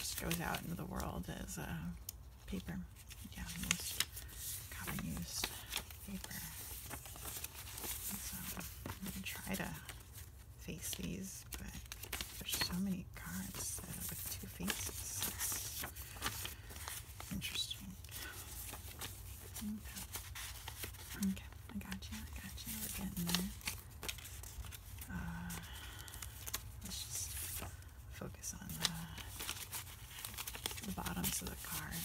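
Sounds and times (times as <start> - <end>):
paper cards shuffling: 1.9 - 32.0.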